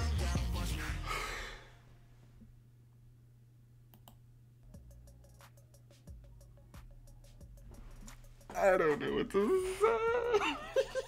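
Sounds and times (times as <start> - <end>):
pop r and b track: 0.0 - 1.6, 4.8 - 11.0
low steady hum: 1.0 - 11.0.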